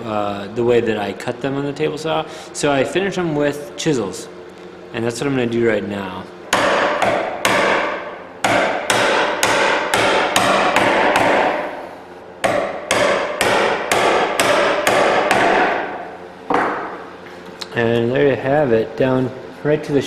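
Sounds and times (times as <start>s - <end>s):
mallet striking a chisel: 6.5s - 11.6s, 12.4s - 16.9s.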